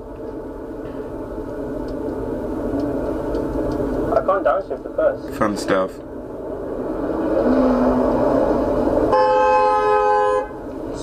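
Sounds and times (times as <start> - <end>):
sports car engine: 0.0 - 11.0
car horn blare: 9.1 - 10.6.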